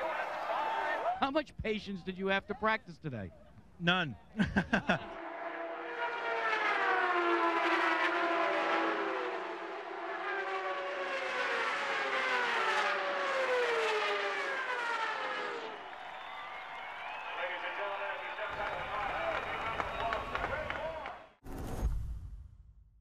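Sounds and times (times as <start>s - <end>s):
person laughing: 4.3s - 5.2s
race cars passing: 5.0s - 21.1s.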